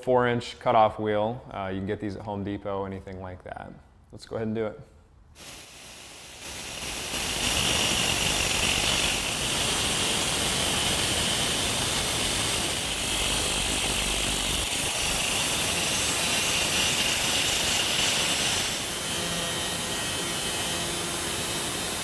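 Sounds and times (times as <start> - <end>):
angle grinder cutting steel: 5.4 - 22.0.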